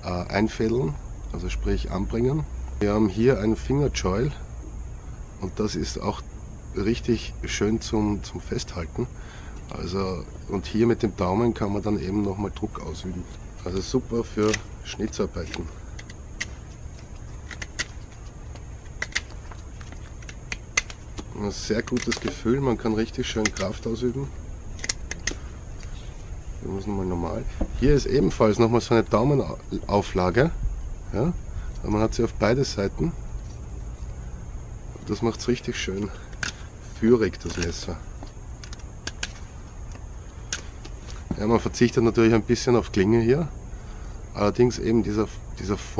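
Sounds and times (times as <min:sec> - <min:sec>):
steady low rumble: 0:00.0 - 0:45.9.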